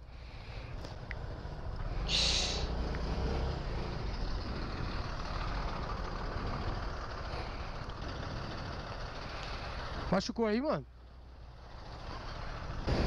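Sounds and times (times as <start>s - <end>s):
bus driving past: 0.0s - 13.0s
vehicle engines running: 0.0s - 13.0s.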